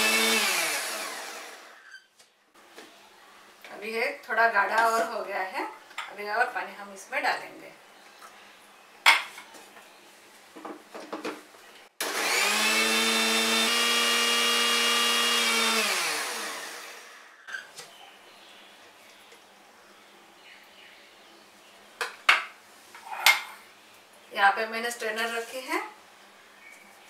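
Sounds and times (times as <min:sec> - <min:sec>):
mixer grinder motor running: 0:00.0 - 0:01.8, 0:12.0 - 0:17.3.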